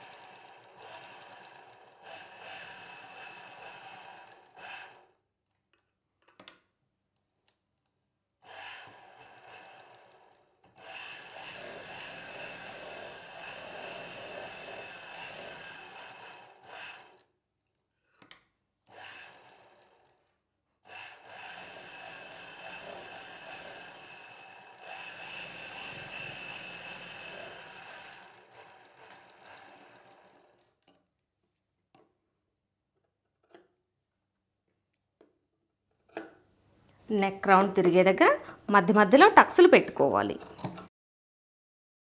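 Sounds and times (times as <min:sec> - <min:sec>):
sewing machine running: 0:00.0 - 0:05.2, 0:08.4 - 0:17.3, 0:18.8 - 0:31.0.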